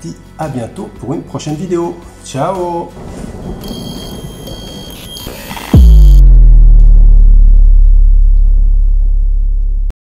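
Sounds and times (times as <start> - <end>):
deep bass hit with low rumble: 5.8 - 9.9.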